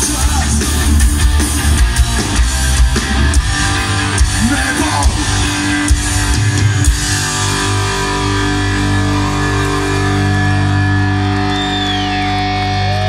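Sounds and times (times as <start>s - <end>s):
bass guitar: 0.0s - 13.0s
electric guitars: 0.0s - 13.0s.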